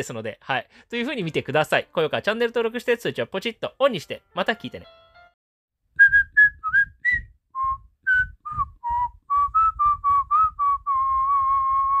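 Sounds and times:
person whistling a tune: 0:06.0 - 0:12.0.

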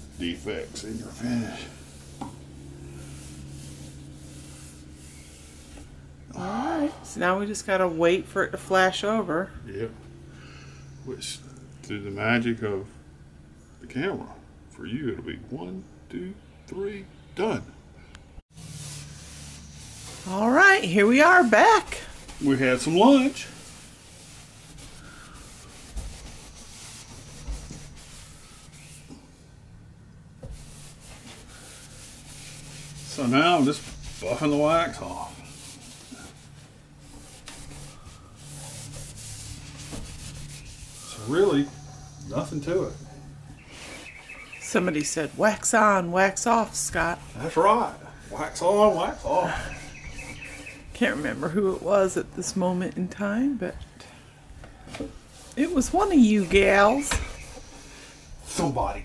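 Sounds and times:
towel rubbing wax on wood: 0:00.0 - 0:06.0, 0:18.5 - 0:29.3, 0:30.4 - 0:53.1, 0:54.9 - 0:59.0
steady low hum: 0:00.0 - 0:59.0.

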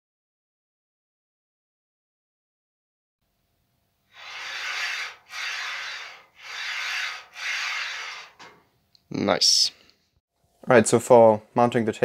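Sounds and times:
rubbing rasping strokes: 0:04.1 - 0:08.4.

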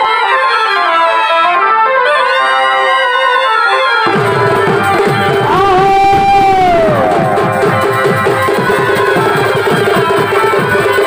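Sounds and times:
wind instrument long note: 0:00.0 - 0:11.0
fast steady drumming: 0:04.0 - 0:11.0.

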